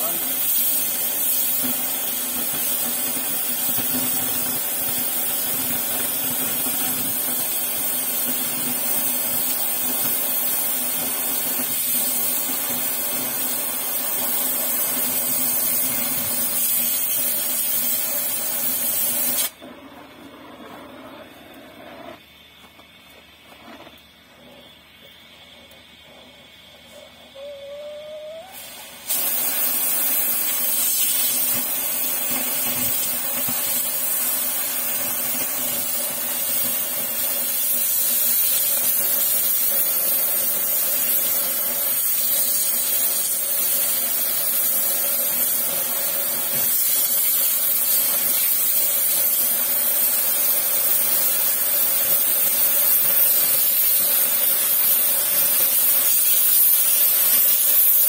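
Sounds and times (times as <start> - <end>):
cutting torch hissing: 0.0 - 22.8, 23.4 - 58.0.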